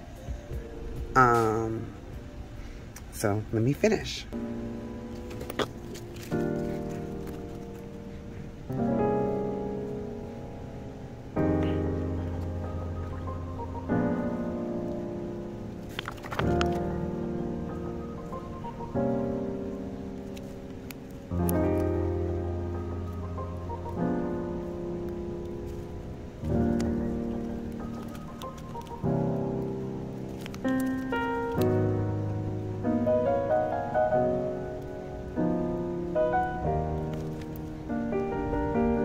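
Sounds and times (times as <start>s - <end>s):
slow piano chords: 0.0s - 39.0s.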